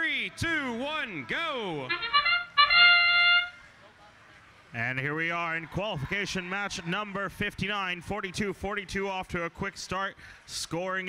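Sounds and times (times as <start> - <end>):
electronic horn signal: 1.9 - 3.6.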